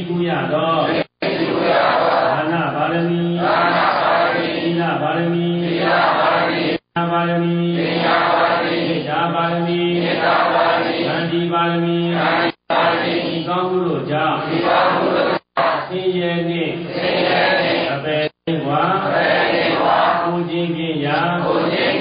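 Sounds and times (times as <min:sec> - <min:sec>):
man chanting in monotone: 0:00.0 - 0:01.2, 0:02.2 - 0:05.9, 0:06.8 - 0:08.0, 0:08.9 - 0:10.2, 0:11.1 - 0:12.5, 0:13.3 - 0:14.5, 0:15.6 - 0:17.0, 0:17.8 - 0:19.4, 0:20.1 - 0:22.0.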